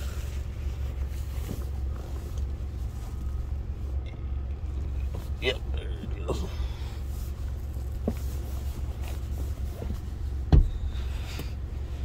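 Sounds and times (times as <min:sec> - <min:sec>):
low rumble inside truck cab: 0:00.0 - 0:12.0
faint knocks of seat handling: 0:09.8 - 0:11.6.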